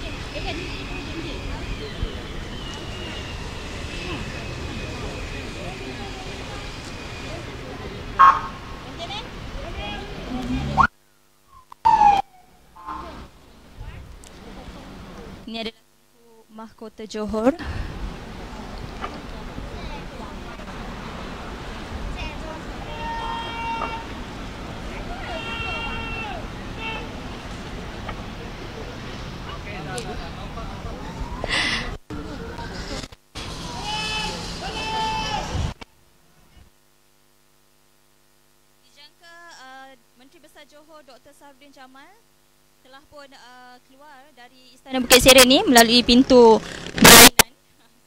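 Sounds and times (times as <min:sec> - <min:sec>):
faint indistinct voices: 0:00.0 - 0:10.8, 0:18.4 - 0:35.8
car horn: 0:25.1 - 0:27.2, 0:33.8 - 0:35.2.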